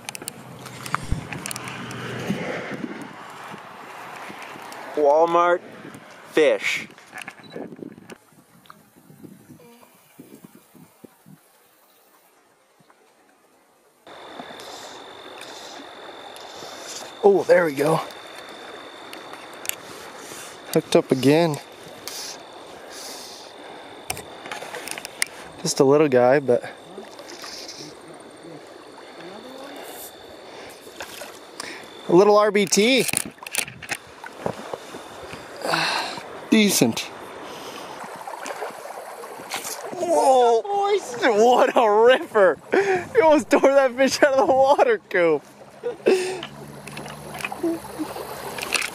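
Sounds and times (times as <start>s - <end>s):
flowing creek water: 0.0s - 48.9s
water splashing and trickling: 0.0s - 48.9s
thin high tone: 14.1s - 22.6s.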